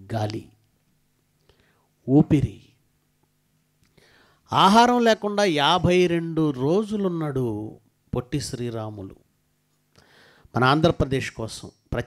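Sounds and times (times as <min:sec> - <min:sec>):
man speaking into microphone: 0:00.0 - 0:00.6, 0:02.0 - 0:02.8, 0:04.5 - 0:09.2, 0:10.5 - 0:12.0.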